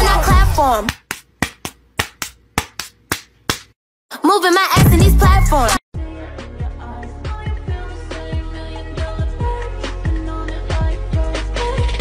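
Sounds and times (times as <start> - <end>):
sharp hand claps: 0.8 - 3.8
music with singing voice: 4.6 - 12.0.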